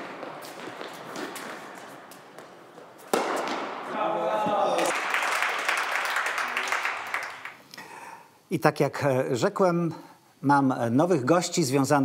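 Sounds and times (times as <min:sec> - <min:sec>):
crowd applauding and cheering: 0:04.5 - 0:07.6.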